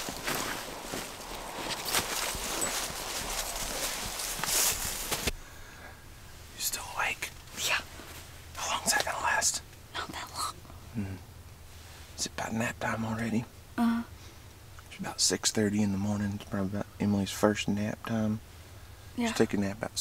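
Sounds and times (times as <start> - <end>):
footsteps of people walking: 0.0 - 5.4
steady noise hiss: 0.0 - 20.0
person whispering: 6.6 - 7.9, 8.6 - 11.2.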